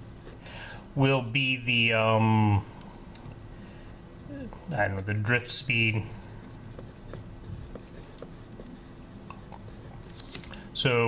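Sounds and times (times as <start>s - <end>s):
pen scratching on paper: 6.7s - 10.1s.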